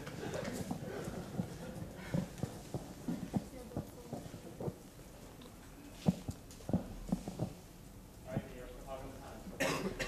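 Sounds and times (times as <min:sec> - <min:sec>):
sharp cough: 0:09.6 - 0:10.0.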